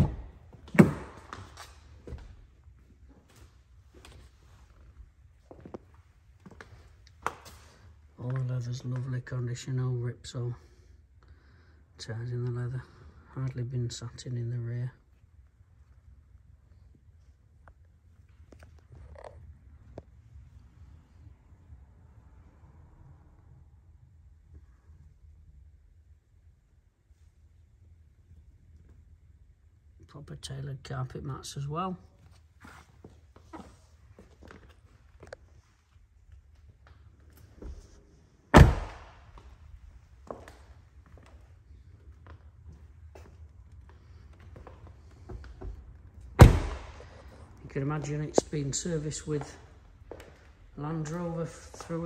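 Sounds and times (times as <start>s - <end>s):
car door slamming: 38.6s - 39.1s, 46.4s - 47.0s.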